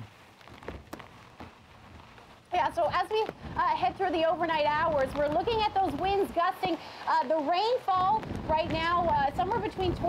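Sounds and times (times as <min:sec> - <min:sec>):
heavy rain hiss: 0:00.0 - 0:10.0
gusting wind: 0:00.8 - 0:10.0.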